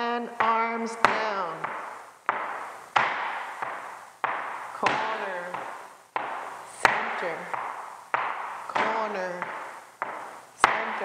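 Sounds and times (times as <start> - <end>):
shoes stamping on wooden floor: 0.0 - 11.0.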